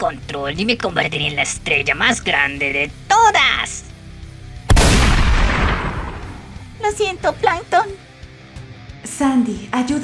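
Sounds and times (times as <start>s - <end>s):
faint background music: 0.0s - 10.0s
heavy rifle shot: 4.7s - 6.6s.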